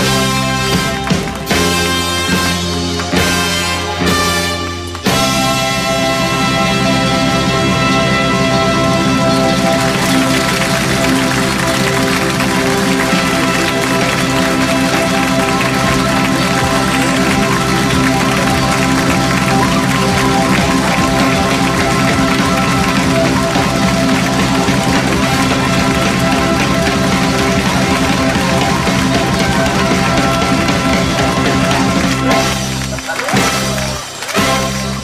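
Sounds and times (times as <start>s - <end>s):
live band playing: 0.0s - 35.0s.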